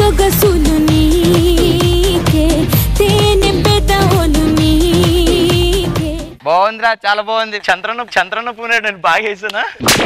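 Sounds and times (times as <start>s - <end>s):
music: 0.0s - 6.4s.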